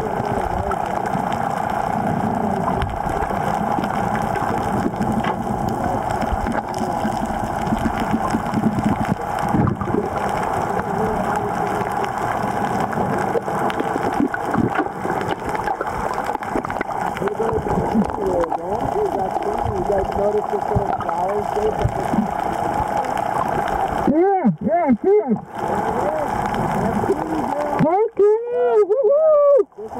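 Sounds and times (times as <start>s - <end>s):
small crackles: 0.0s - 29.9s
underwater droning hum: 0.0s - 29.9s
water noise: 0.0s - 29.9s.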